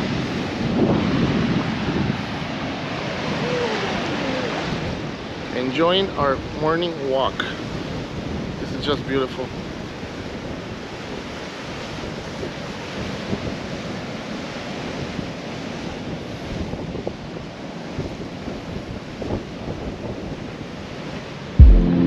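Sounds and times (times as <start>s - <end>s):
wind on microphone: 0.0s - 6.6s, 7.5s - 21.9s
ocean surf on beach: 0.0s - 22.0s.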